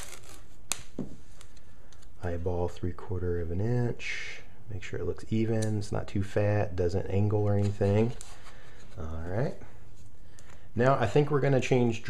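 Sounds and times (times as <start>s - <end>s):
tape pulled off roll and torn: 0.0s - 2.1s.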